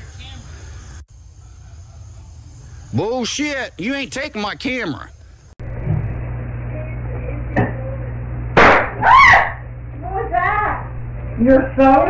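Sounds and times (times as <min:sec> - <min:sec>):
mains hum: 0:00.0 - 0:12.0.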